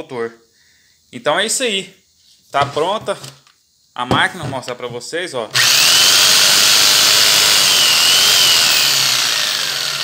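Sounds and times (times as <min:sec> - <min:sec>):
jigsaw running: 0:05.5 - 0:10.0.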